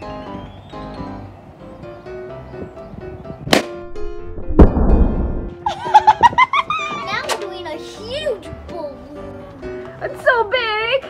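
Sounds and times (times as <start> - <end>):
background music: 0.0 - 11.0
balloon bursting: 3.5 - 5.6
sharp crack: 3.5 - 5.6
deep thud: 3.6 - 5.6.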